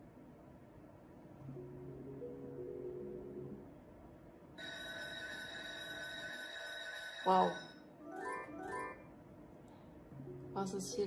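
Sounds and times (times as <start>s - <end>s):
bright electronic ringing chord: 1.4s - 3.7s, 4.6s - 9.0s
low electronic melody tones: 1.4s - 3.9s, 10.1s - 11.0s.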